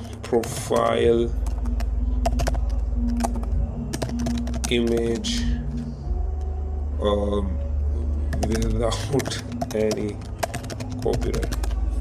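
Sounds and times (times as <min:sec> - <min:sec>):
keyboard typing: 0:00.0 - 0:05.5, 0:08.3 - 0:11.9
low background hum: 0:00.0 - 0:12.0.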